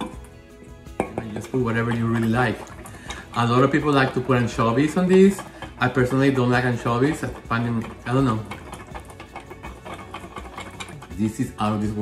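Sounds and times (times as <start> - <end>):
whisk clattering in metal bowl: 0.0 - 12.0.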